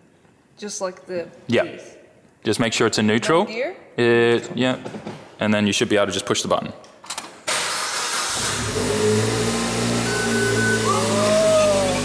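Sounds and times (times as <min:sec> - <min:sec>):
car engine starting and idling: 0:07.5 - 0:12.0.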